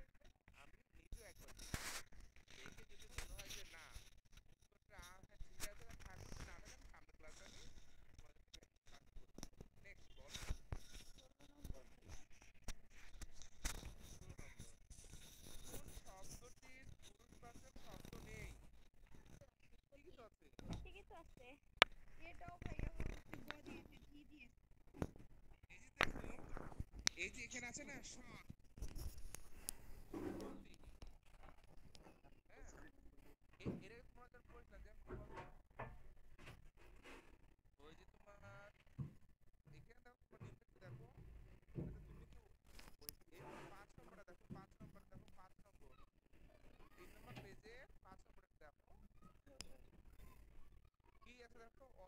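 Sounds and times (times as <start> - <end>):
faint indistinct voices: 0.0 - 36.5.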